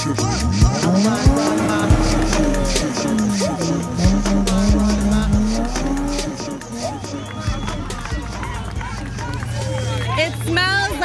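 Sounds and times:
car engine at high revs: 0.0 - 11.0
onlookers shouting: 0.0 - 11.0.

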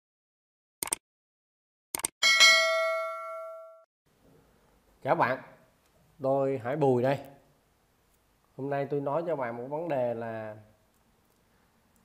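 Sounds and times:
bell ding: 2.2 - 3.9.

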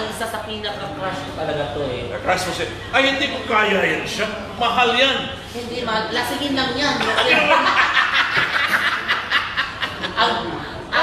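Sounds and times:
men laughing: 7.0 - 11.0.

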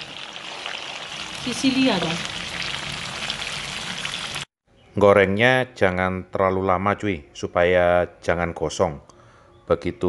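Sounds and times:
meat sizzling in hot oil: 0.0 - 4.5.

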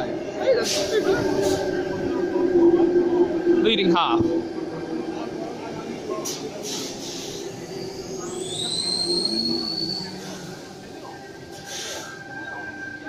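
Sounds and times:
train wheels rumbling on rail: 0.0 - 12.2.

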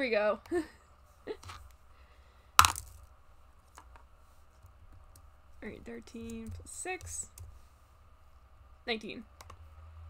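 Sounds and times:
die clacking: 2.6 - 3.1.

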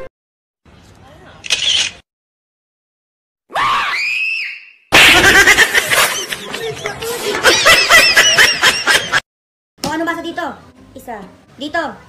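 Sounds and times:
woman screaming: 3.5 - 4.7
loud laughter: 5.0 - 9.2.

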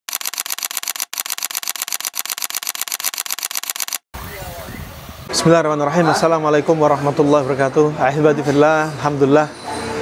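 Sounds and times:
rapid clicking: 0.1 - 4.0.

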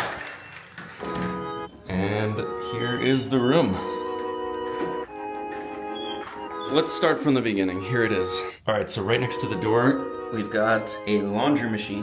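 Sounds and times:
music with organ-like chords: 1.0 - 12.0.

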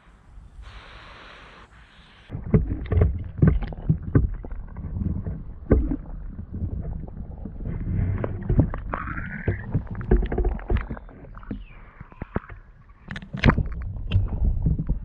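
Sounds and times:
water sloshing: 2.3 - 15.0.

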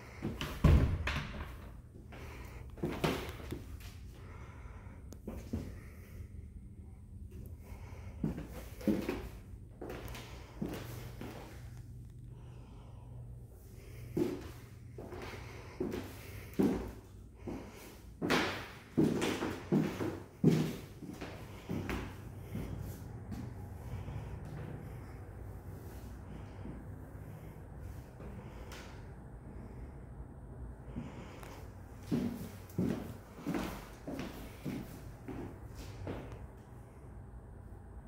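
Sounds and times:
low hum: 0.8 - 38.0
footsteps on hardwood floor: 15.8 - 23.0, 32.0 - 36.3.

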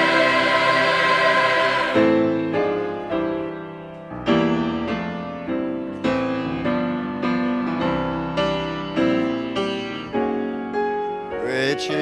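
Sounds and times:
gospel choir singing in harmony: 0.0 - 3.0.

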